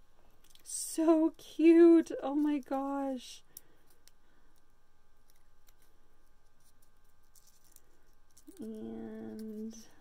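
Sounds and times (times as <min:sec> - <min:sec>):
low room hum: 0:00.0 - 0:10.0
paper strip crinkling: 0:05.2 - 0:09.9.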